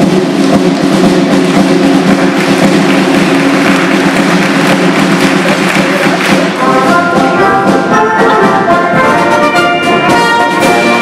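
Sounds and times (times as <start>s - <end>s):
brass band playing a march: 0.0s - 11.0s
drums striking in rhythm: 0.0s - 11.0s.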